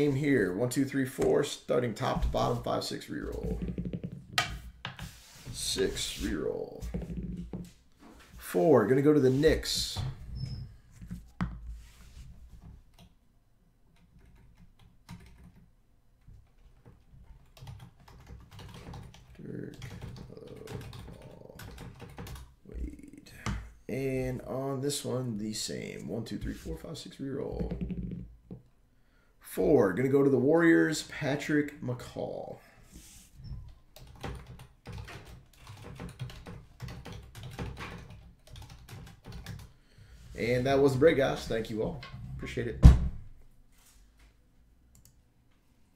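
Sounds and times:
computer keyboard typing: 14.0 - 15.7, 17.3 - 22.5, 34.0 - 39.7.

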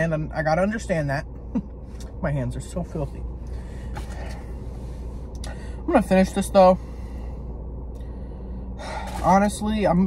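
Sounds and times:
low hum inside car: 0.0 - 10.0.

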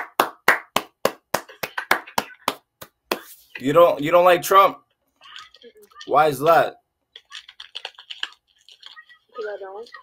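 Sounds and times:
hand claps: 0.0 - 3.3.

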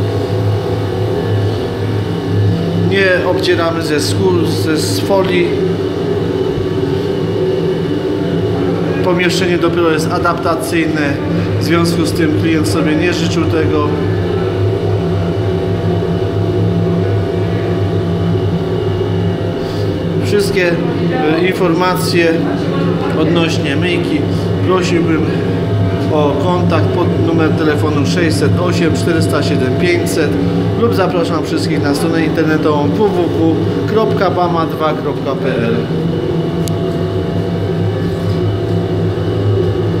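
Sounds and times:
industrial washer mechanical drone: 0.0 - 40.0.

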